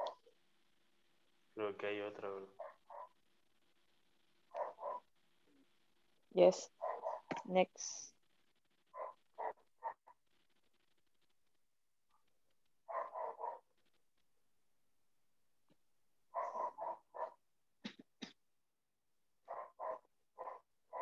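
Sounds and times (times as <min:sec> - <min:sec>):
dog barking faintly: 0:01.6 - 0:03.2, 0:04.5 - 0:05.2, 0:06.6 - 0:07.5, 0:08.9 - 0:10.2, 0:12.9 - 0:13.7, 0:16.3 - 0:17.4, 0:19.5 - 0:21.0.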